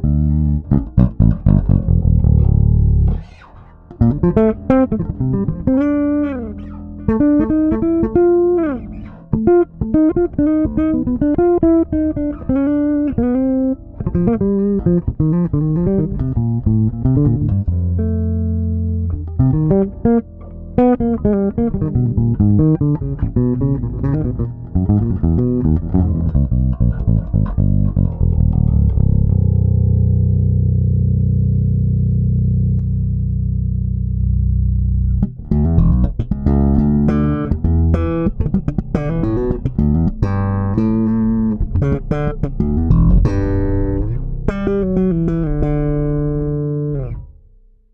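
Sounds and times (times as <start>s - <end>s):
electric bass played solo: 0.0s - 47.9s.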